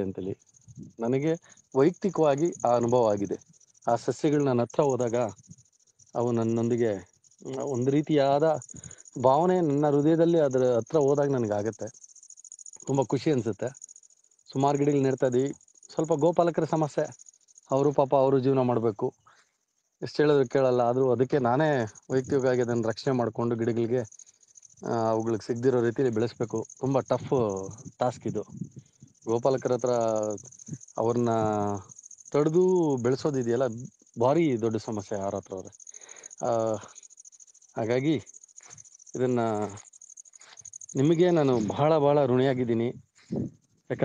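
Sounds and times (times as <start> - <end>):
man speaking: 0.0 - 5.4, 6.2 - 11.9, 12.9 - 13.7, 14.5 - 17.1, 17.7 - 19.2, 20.0 - 24.1, 24.8 - 28.6, 29.3 - 31.8, 32.4 - 35.7, 36.4 - 36.9, 37.8 - 38.2, 39.2 - 39.8, 41.0 - 44.0
man talking in a low voice: 0.0 - 5.4, 6.2 - 11.9, 12.9 - 13.7, 14.5 - 17.1, 17.7 - 19.2, 20.0 - 24.1, 24.8 - 28.7, 29.3 - 31.8, 32.4 - 35.7, 36.4 - 36.9, 37.8 - 38.2, 39.2 - 39.8, 41.0 - 44.0
insects trilling: 0.0 - 44.0.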